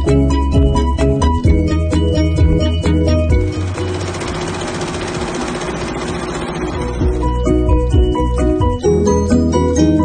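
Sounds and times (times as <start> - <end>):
background music: 0.0 - 10.0
embroidery machine rattling: 2.6 - 7.6.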